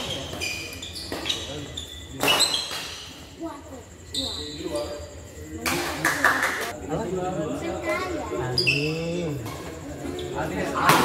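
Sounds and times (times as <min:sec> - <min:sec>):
shoes squeaking on court: 0:00.0 - 0:05.2, 0:08.4 - 0:10.4.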